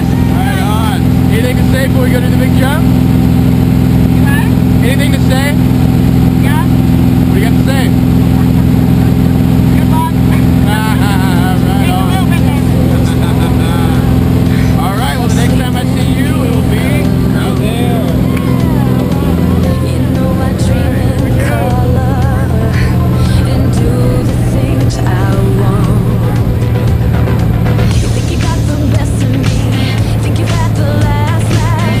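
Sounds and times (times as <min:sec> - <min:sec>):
plane engine and propeller droning: 0:00.0 - 0:32.0
voices shouting: 0:09.7 - 0:27.8.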